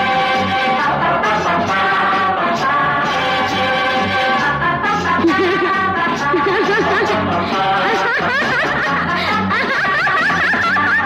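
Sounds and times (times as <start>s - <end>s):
woman singing laughing vocal: 5.1s - 11.0s.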